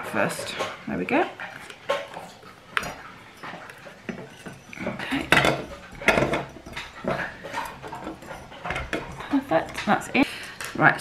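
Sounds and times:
knocking and scraping inside ceramic pot: 0:00.1 - 0:11.0.

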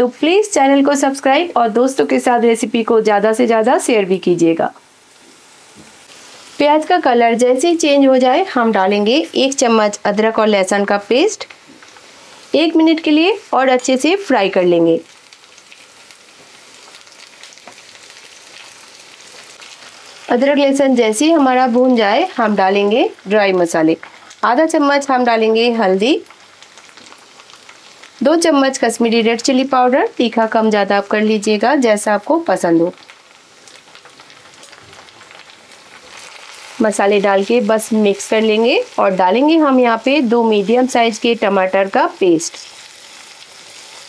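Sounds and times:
onions sizzling in hot oil: 0:00.0 - 0:44.0.

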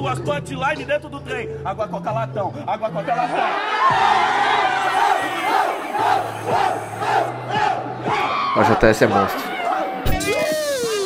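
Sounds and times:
audience shouting and cheering: 0:03.2 - 0:11.0.

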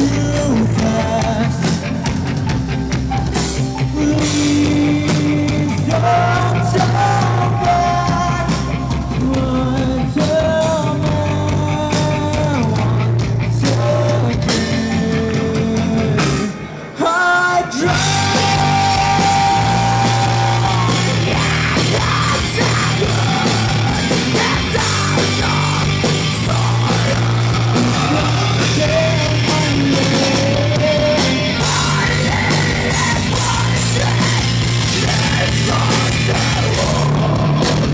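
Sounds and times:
heavy rock band playing: 0:00.0 - 0:37.9.

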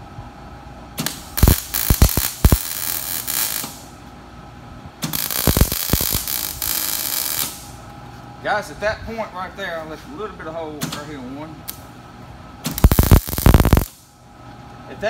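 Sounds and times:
welding arc crackling: 0:01.0 - 0:04.0, 0:05.0 - 0:07.8, 0:12.7 - 0:14.1.

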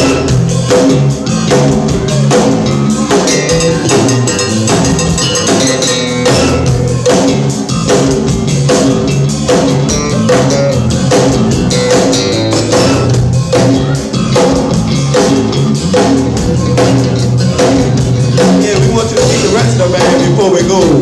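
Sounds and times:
bass guitar: 0:00.0 - 0:21.0
drum kit beat: 0:00.0 - 0:21.0
electric guitar: 0:00.0 - 0:21.0.

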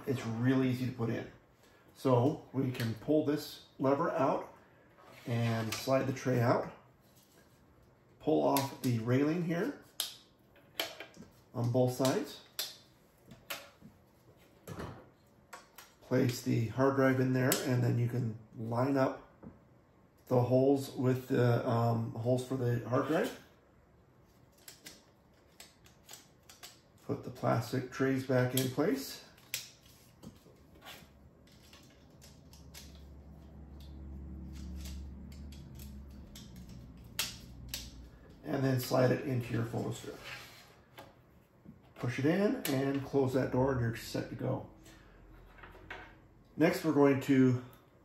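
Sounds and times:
plastic clicks and handling noise: 0:24.4 - 0:27.0, 0:31.4 - 0:39.0.

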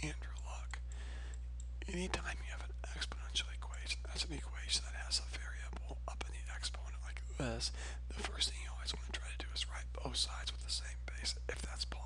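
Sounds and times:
steady low hum: 0:00.0 - 0:12.0
man speaking quietly: 0:01.8 - 0:12.0.

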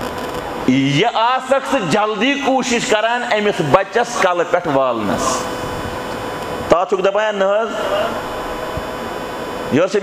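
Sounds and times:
faint hum: 0:00.0 - 0:10.0
man speaking amplified: 0:00.7 - 0:05.6, 0:06.7 - 0:08.4, 0:09.7 - 0:10.0.

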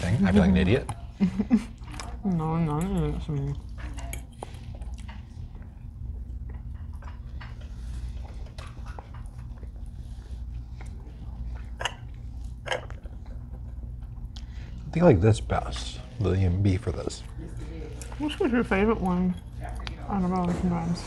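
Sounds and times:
low room hum: 0:00.0 - 0:21.0
chewing: 0:01.7 - 0:14.8, 0:16.9 - 0:20.6.

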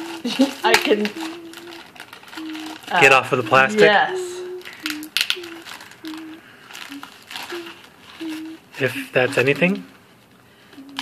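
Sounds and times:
plastic wrap crinkling: 0:00.0 - 0:09.9
person humming a note: 0:01.0 - 0:09.8, 0:10.8 - 0:11.0.

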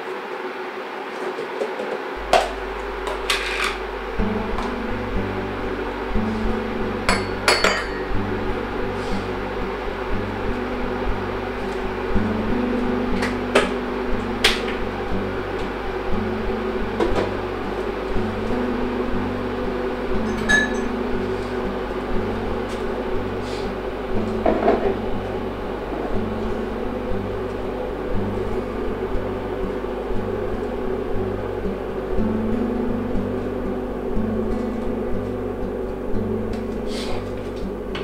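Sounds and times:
steady hum: 0:00.0 - 0:38.0
slow bass-line music: 0:02.2 - 0:38.0
crockery clinking: 0:07.1 - 0:08.1.

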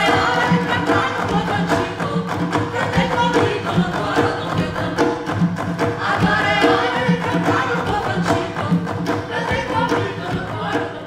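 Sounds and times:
hand drums beating: 0:00.0 - 0:11.0
voices singing: 0:00.0 - 0:11.0.

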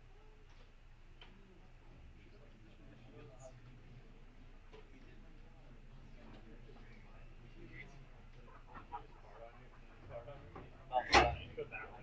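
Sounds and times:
faint background talk: 0:00.0 - 0:12.0.

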